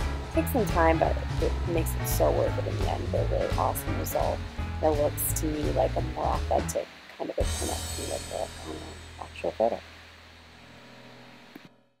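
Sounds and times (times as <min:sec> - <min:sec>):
low electrical hum: 0:00.0 - 0:11.7
faint background hiss: 0:00.0 - 0:11.9.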